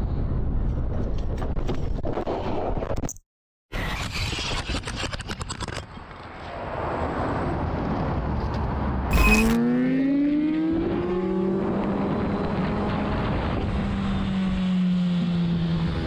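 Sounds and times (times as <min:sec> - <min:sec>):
motorcycle engine accelerating: 0:09.1 - 0:16.0.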